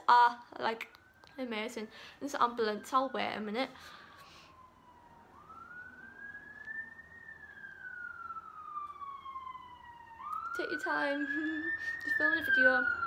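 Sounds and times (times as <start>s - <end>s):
faint ambulance siren wailing: 0.0s - 13.0s.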